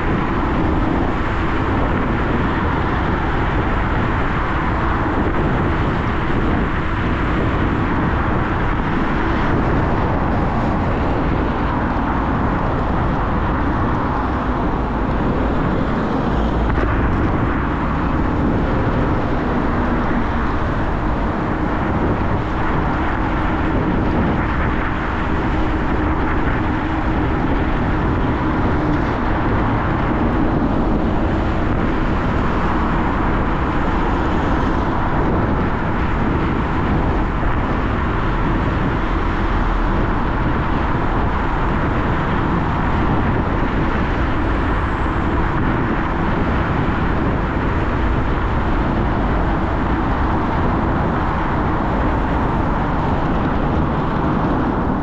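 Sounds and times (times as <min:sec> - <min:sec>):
scooter road noise: 0:00.0 - 0:55.0
wind rumbling on microphone: 0:00.0 - 0:55.0.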